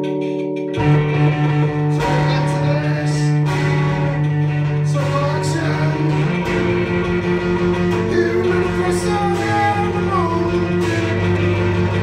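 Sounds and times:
live band music with guitar: 0.0 - 12.0.

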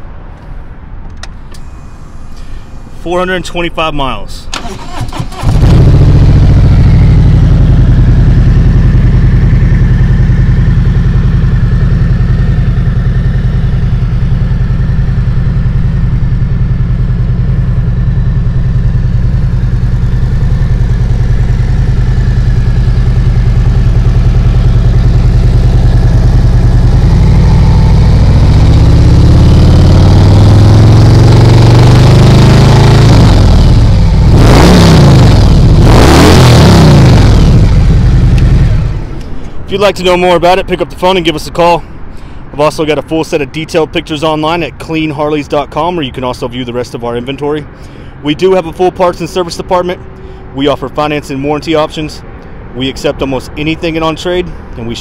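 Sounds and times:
motorcycle engine revving: 4.6 - 39.4
motorcycle engine idling: 4.8 - 34.3, 37.0 - 39.4.

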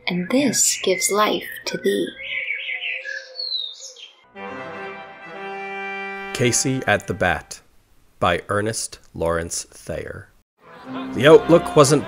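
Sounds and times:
birds chirping: 0.0 - 4.3.

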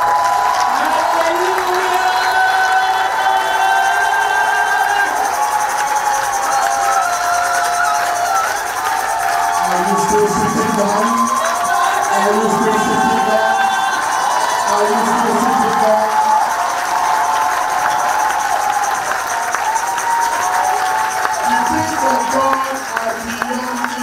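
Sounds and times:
congregation cheering and shouting: 0.0 - 24.0
high-pitched cries: 0.7 - 24.0
men shouting: 0.8 - 18.9.

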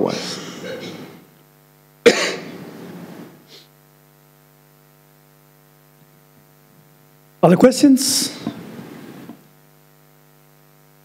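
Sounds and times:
man coughing into microphone: 0.0 - 1.3, 2.0 - 2.9
electrical mains hum: 0.0 - 11.0.

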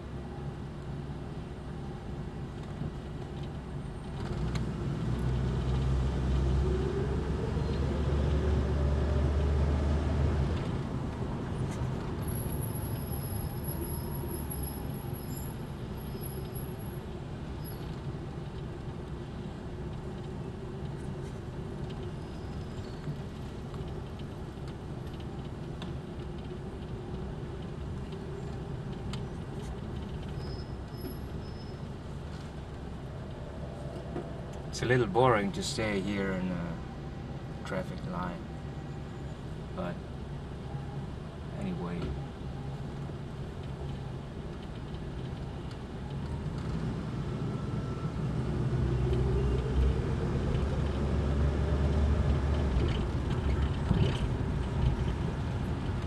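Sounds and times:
low rumble with rising tone: 31.2 - 39.0.

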